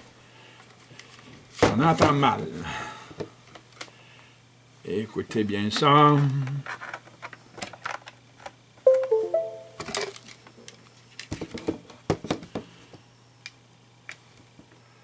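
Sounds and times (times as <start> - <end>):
computer control clicks and taps: 8.9 - 9.8
stepped electronic tones: 8.9 - 9.8.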